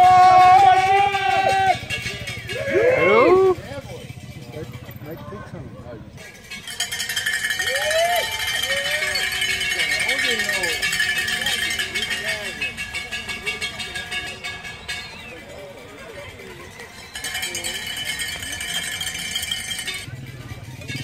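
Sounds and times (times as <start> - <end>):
spectators shouting: 0.0 - 3.7, 7.2 - 20.1
cowbells shaken fast: 0.0 - 21.0.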